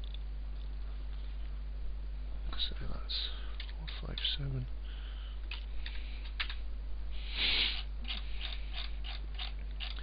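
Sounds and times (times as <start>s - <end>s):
low mains hum: 0.0s - 10.0s
mouse scroll wheel clicking: 8.1s - 10.0s.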